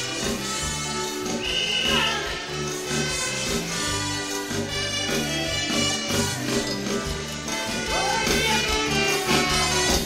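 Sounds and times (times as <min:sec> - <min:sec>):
calypso band playing: 0:00.0 - 0:10.0.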